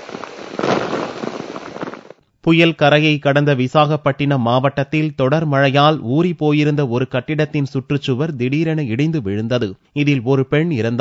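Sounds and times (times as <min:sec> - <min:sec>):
wind and rain buffeting microphone: 0:00.0 - 0:02.2.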